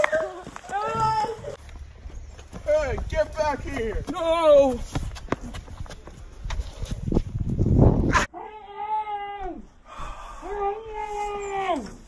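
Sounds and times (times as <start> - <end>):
footsteps on grass: 0.2 - 7.6
wind on microphone: 2.0 - 8.3.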